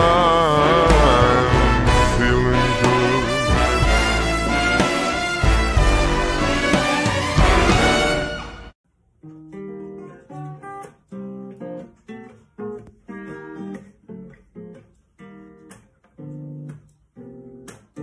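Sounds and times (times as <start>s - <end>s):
acoustic guitar chords: 0.0s - 8.2s.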